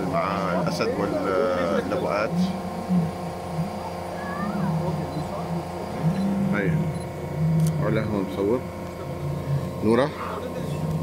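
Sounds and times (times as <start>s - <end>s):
engine hum: 0.0s - 11.0s
murmur of voices: 0.0s - 11.0s.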